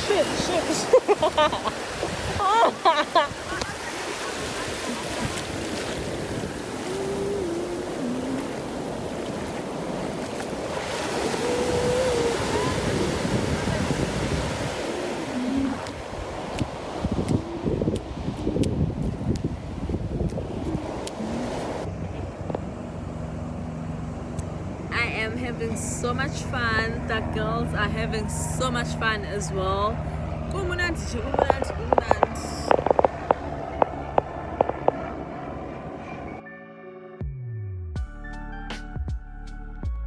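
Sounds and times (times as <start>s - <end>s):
ocean surf breaking: 0.0s - 21.9s.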